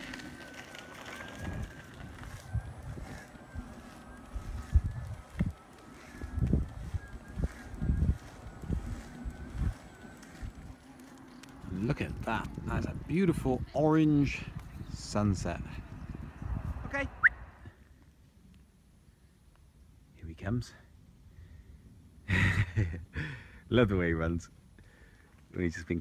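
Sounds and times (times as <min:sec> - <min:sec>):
faint wavering whine: 0:00.0 - 0:18.0
wind on microphone: 0:01.4 - 0:10.8, 0:11.6 - 0:17.8.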